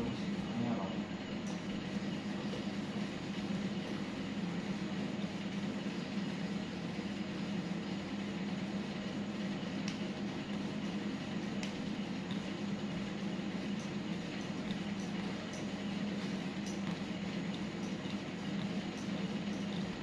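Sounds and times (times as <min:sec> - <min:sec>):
low mechanical hum with hiss: 0:00.0 - 0:20.0.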